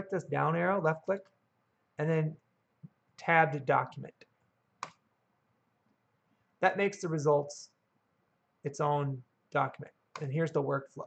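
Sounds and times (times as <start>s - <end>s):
computer mouse click: 4.8s - 5.1s.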